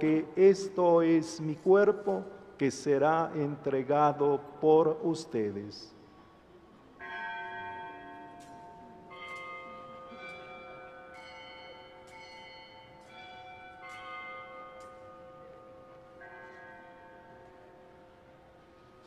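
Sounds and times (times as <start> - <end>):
bells ringing: 7.0 - 19.0.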